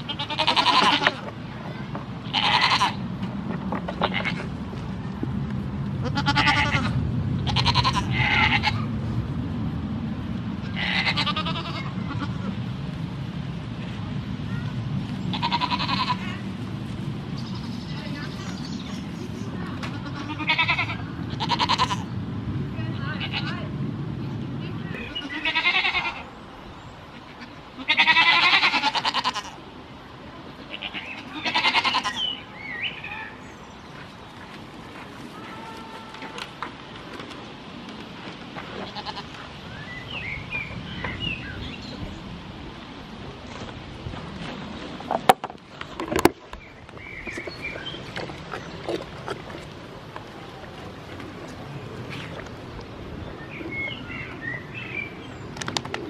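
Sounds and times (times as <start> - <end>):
goats bleating: 0.0 - 1.2, 2.3 - 3.0, 6.0 - 8.8, 10.7 - 12.5, 15.3 - 16.4, 19.8 - 22.1, 25.1 - 26.2, 27.4 - 29.6, 30.7 - 32.3, 38.8 - 39.3.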